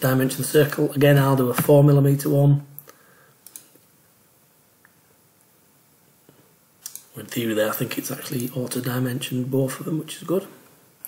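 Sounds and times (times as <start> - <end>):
faint computer mouse clicks: 2.8 - 3.9, 6.8 - 7.1.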